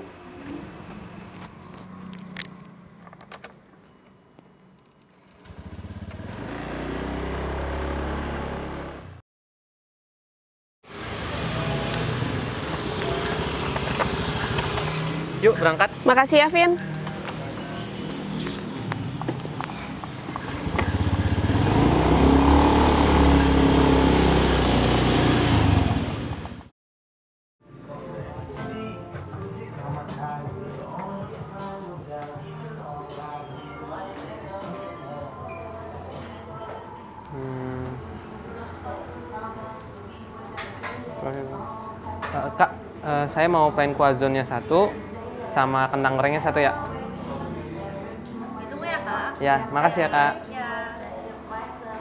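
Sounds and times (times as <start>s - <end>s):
scooter engine starting and running: 5.2s - 9.2s, 10.9s - 15.8s, 20.3s - 26.7s.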